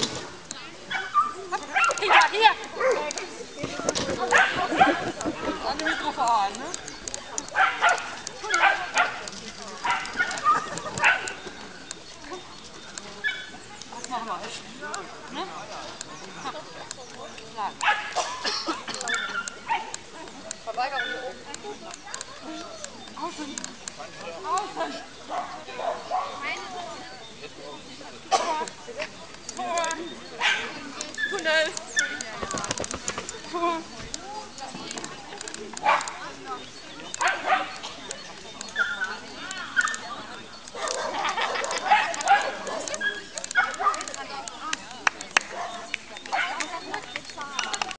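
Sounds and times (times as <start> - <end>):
dog barking: 4.3 - 5.0, 7.6 - 9.2, 9.8 - 11.4, 17.8 - 18.3, 30.4 - 30.7, 35.8 - 36.2, 37.2 - 37.8, 40.8 - 44.1
dog barking and yipping: 7.5 - 9.2.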